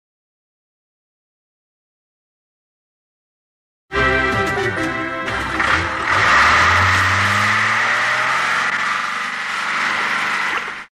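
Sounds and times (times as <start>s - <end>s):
diesel engine running: 4.8s - 10.9s
tyres churning wet ground: 5.3s - 10.9s.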